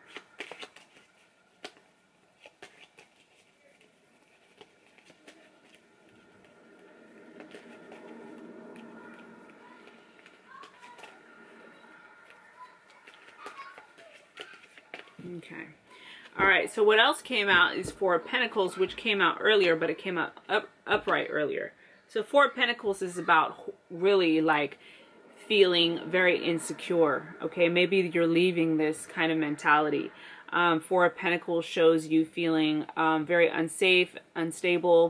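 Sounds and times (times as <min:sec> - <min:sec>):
cards being shuffled: 0:00.0 - 0:15.4.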